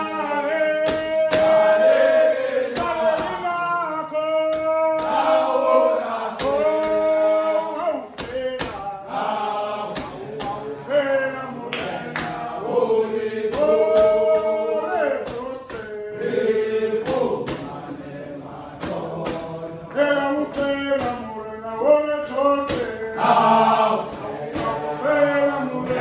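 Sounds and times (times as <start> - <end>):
sharp percussive strikes: 0.0 - 3.7, 4.4 - 10.9, 11.8 - 21.4, 22.2 - 26.0
men singing a chant: 0.0 - 26.0.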